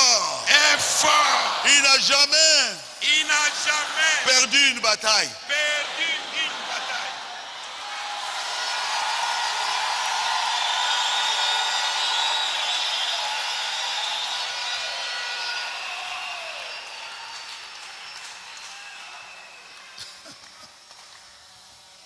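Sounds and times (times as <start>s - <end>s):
crowd cheering and clapping: 0.0s - 22.0s.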